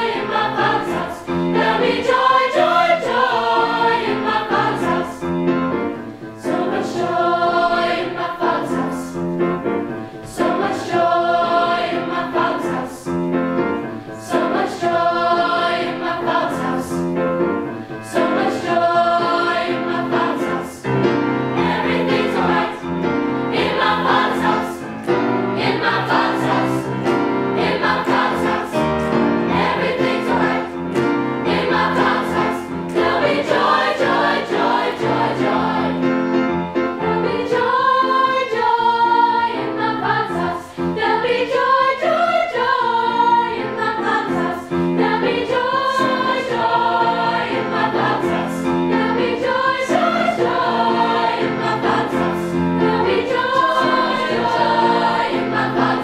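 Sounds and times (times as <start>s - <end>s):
choir singing gospel song: 0.0s - 56.0s.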